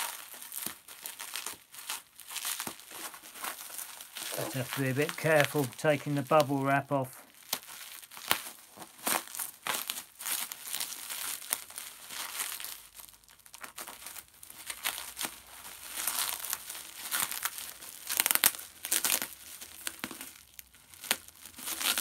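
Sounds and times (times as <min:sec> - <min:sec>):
bubble wrap crinkling: 0:00.0 - 0:22.0.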